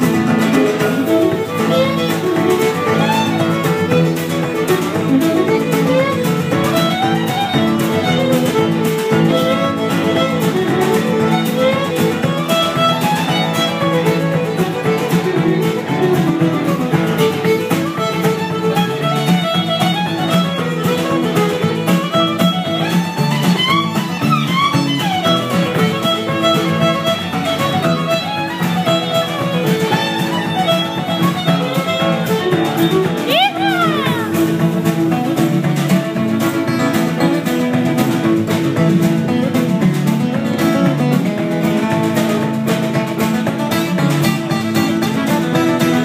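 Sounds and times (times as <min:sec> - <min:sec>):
fiddle playing: 0:00.0 - 0:46.0
strummed acoustic guitars: 0:00.0 - 0:46.0.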